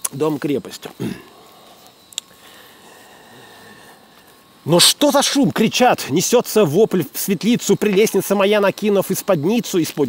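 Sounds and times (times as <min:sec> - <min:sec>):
city background hiss: 0:00.0 - 0:10.0
faint steady hum: 0:00.0 - 0:10.0.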